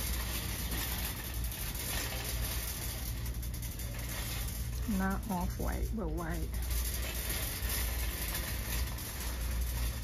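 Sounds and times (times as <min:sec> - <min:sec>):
faint clicks and rattles: 0:00.0 - 0:10.0
low hum and hiss: 0:00.0 - 0:10.0.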